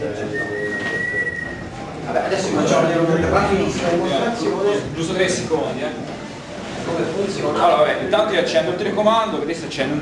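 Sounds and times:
faint room murmur: 0.0 - 10.0
high thin whistle tone: 0.3 - 1.7.

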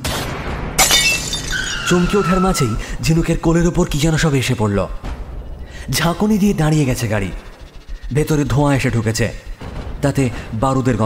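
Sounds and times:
gunshot blast: 0.0 - 0.8
car window glass shattering: 0.8 - 2.0.

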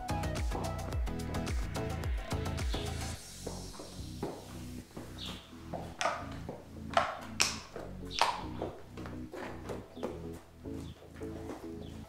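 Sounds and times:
soft background music: 0.0 - 12.0
horse hooves clopping on bricks: 3.5 - 12.0.

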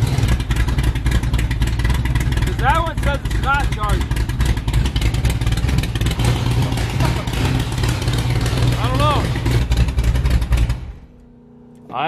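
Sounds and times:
car engine idling: 0.0 - 11.9.

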